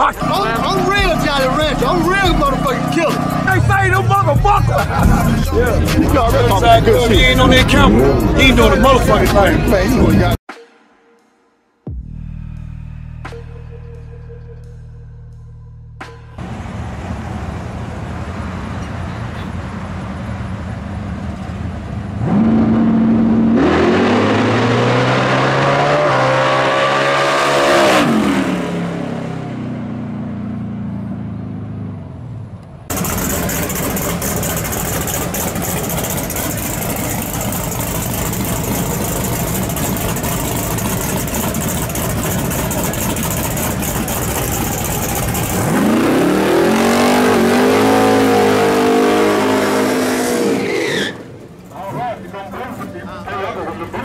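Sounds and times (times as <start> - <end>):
race car engine at full throttle: 0.0 - 10.4, 16.2 - 54.0
tyres spinning in a burnout: 32.9 - 54.0.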